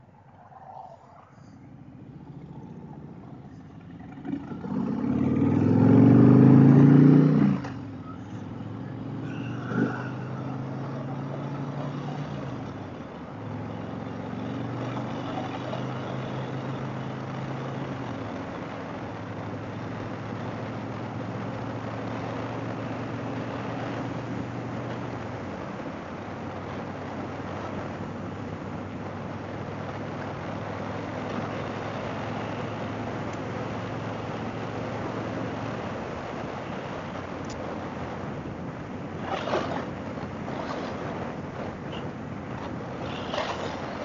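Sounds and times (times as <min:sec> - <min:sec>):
motorcycle engine accelerating: 0:01.6 - 0:24.1, 0:39.2 - 0:44.0
wind rushing over microphone: 0:32.9 - 0:44.0.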